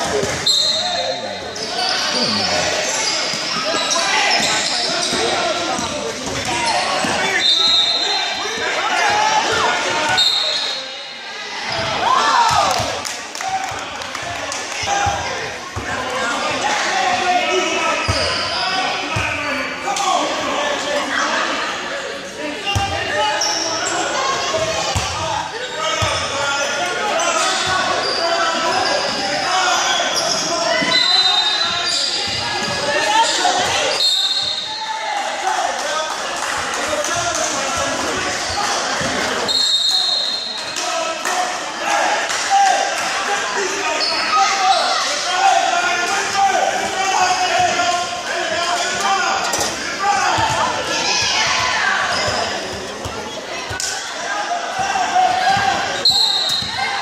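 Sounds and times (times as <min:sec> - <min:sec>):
chatter and shouts: 0:00.0 - 0:57.0
basketball bouncing on court: 0:04.4 - 0:07.2.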